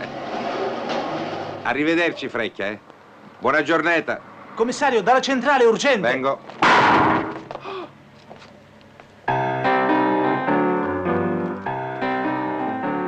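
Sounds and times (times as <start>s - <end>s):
keyboard music with held chords: 9.3s - 13.0s.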